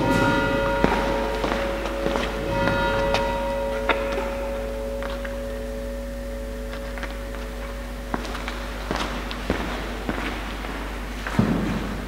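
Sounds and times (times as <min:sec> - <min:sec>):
bell-like struck tones: 0:00.0 - 0:11.6.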